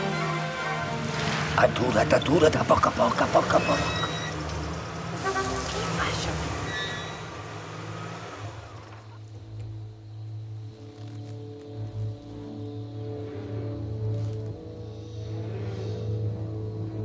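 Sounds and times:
vehicle engines: 0.0 - 12.4
soft orchestral music: 0.0 - 17.0.

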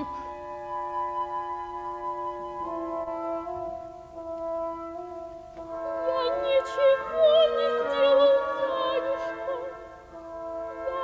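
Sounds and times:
soprano singing with vibrato: 0.0 - 0.9, 2.5 - 11.0
woodwinds and horns sustained chords: 0.0 - 11.0.

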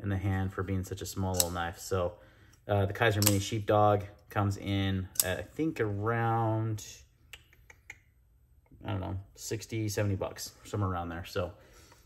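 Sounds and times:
folding knife clicks: 1.3 - 1.6, 3.2 - 3.4.

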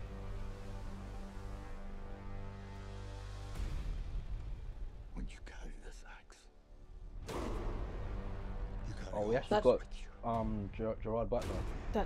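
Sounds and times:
person whispering: 5.3 - 6.5.

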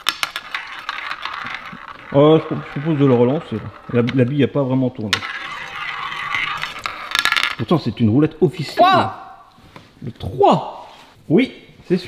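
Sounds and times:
roulette ball clicking: 0.0 - 7.8.

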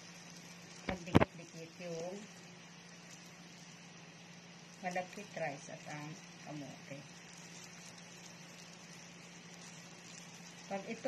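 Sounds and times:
gloved hand kneading dough: 0.0 - 11.0
steady low hum: 0.0 - 11.0.

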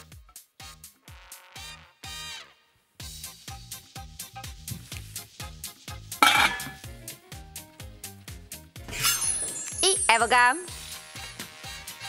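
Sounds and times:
upbeat music with steady beat: 3.0 - 8.0
metallic clink ringing: 6.2 - 6.8.

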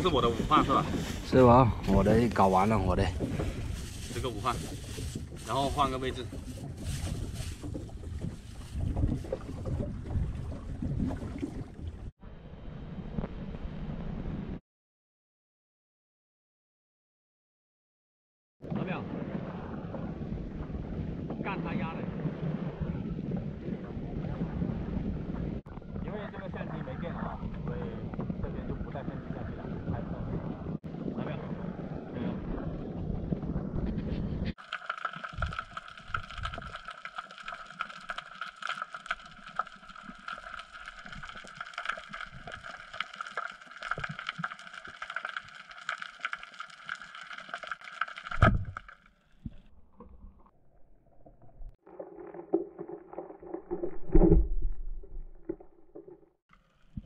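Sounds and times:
wind buffeting microphone: 0.0 - 12.1.

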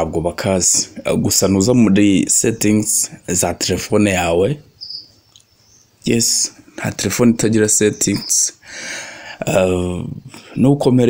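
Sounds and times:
man's voice: 0.0 - 4.6, 6.0 - 8.6, 9.4 - 11.0
faint high-pitched chirp: 4.7 - 6.4, 7.7 - 8.6.

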